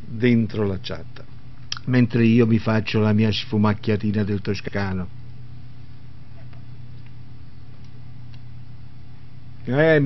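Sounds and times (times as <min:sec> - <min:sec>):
low electrical hum: 0:00.0 - 0:10.0
microphone hiss: 0:00.0 - 0:10.0.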